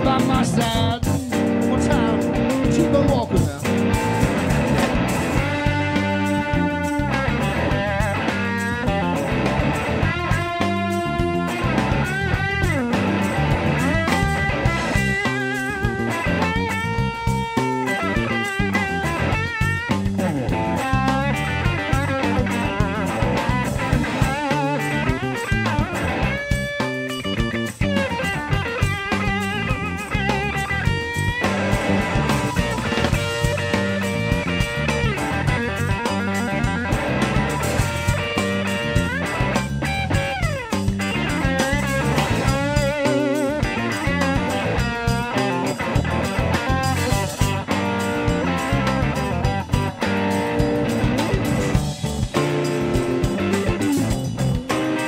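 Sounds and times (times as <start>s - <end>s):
bass and drums: 0.0s - 55.0s
electric guitar lead: 0.0s - 55.0s.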